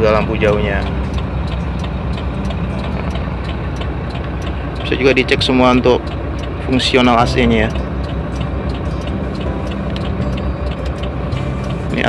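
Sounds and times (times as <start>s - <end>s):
air-conditioning fan blowing: 0.0s - 12.0s
diesel engine idling: 0.0s - 12.0s.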